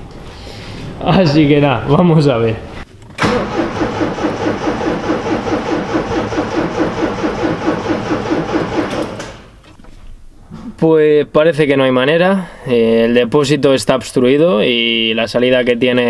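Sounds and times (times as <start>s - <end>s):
engine cranking on starter motor: 3.0s - 9.8s.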